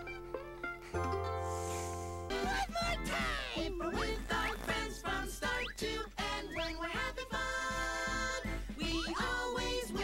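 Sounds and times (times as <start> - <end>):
cheerful cartoon music: 0.0 - 10.0.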